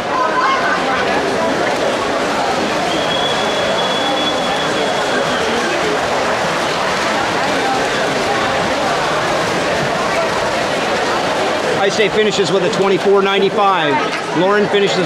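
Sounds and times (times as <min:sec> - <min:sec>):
spectators cheering and yelling: 0:00.0 - 0:15.0.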